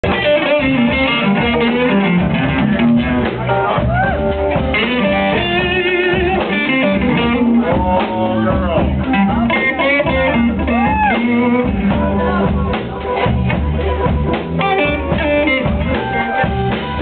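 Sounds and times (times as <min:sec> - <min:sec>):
electric guitar: 0:00.0 - 0:17.0
live blues band playing: 0:00.0 - 0:17.0.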